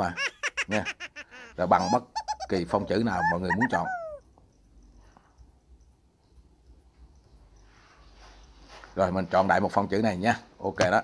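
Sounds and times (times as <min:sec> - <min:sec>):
faint ticks: 0:04.2 - 0:08.9.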